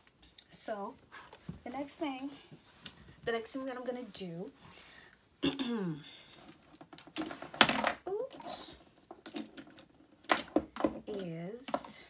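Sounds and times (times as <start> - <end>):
plastic containers clicking: 6.4 - 12.0.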